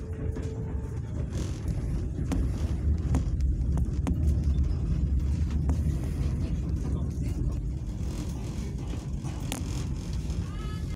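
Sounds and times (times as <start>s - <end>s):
passenger train rumbling on track: 0.0s - 10.9s.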